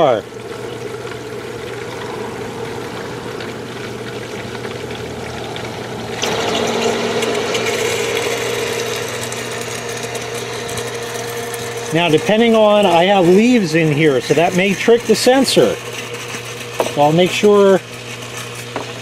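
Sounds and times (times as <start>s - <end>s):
pump drawing air hissing: 0.0s - 19.0s
sump pump electric hum: 0.0s - 19.0s.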